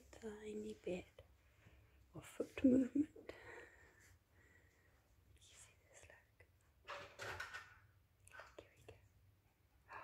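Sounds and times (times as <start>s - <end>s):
person whispering: 5.3s - 6.5s, 8.3s - 9.2s.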